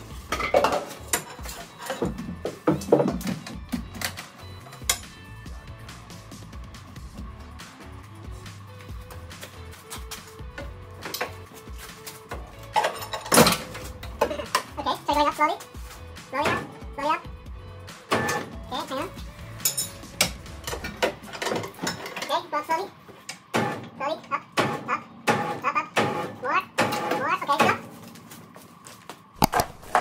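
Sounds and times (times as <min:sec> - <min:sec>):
metal tools clinking: 0:19.6 - 0:22.4.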